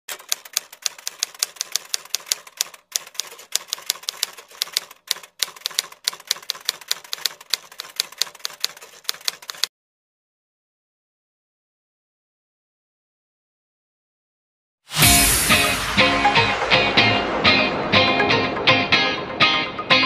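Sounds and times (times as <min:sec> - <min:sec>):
typewriter key clicks: 0:00.1 - 0:09.7.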